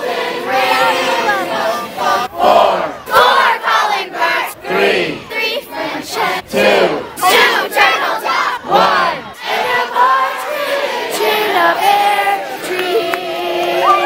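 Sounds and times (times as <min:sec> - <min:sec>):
crowd shouting in unison: 0:00.0 - 0:14.0.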